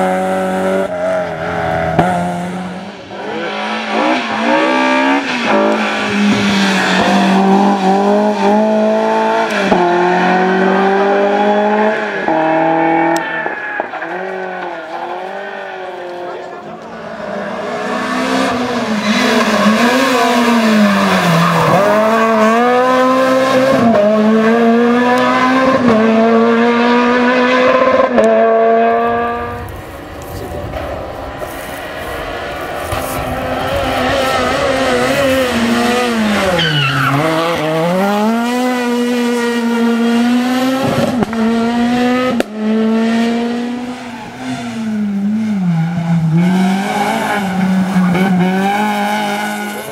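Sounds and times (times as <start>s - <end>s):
rally car engine upshifting: 0.0s - 49.9s
rally cars braking into corners: 0.0s - 49.9s.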